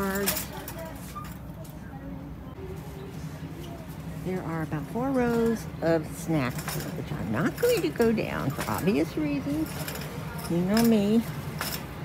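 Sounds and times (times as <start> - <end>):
shopping cart wheels rolling: 0.0 - 2.0, 2.6 - 12.0
distant voices: 0.0 - 12.0.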